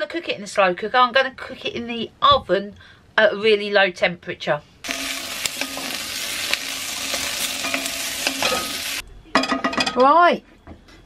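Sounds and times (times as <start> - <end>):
vegetables sizzling in a pot: 4.8 - 9.0
wooden spoon stirring: 4.9 - 9.0.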